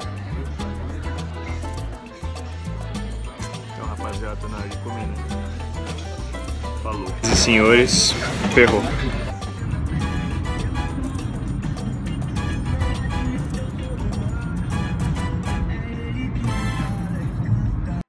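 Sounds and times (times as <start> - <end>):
background music with a beat: 0.0 - 18.0.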